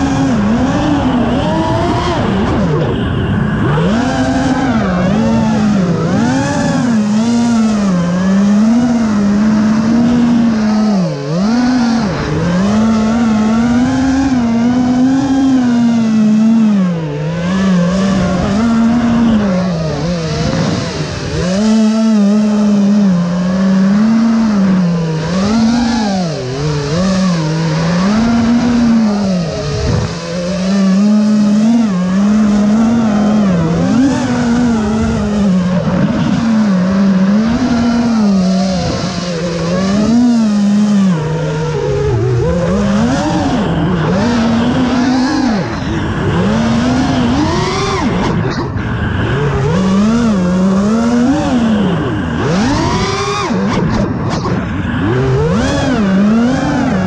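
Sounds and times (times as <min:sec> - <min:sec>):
drone motors whining: 0:00.0 - 0:57.0.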